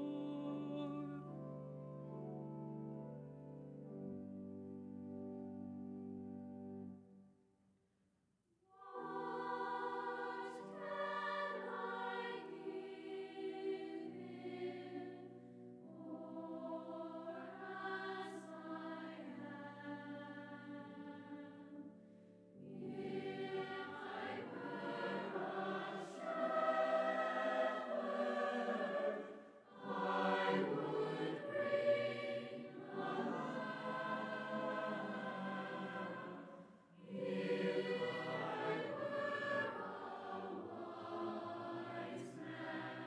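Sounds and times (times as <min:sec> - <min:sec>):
choir singing in church: 0:00.0 - 0:07.1, 0:08.7 - 0:43.0.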